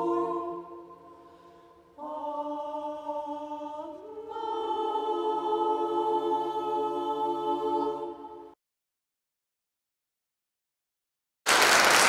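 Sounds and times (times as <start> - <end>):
choir singing a cappella: 0.0 - 8.6.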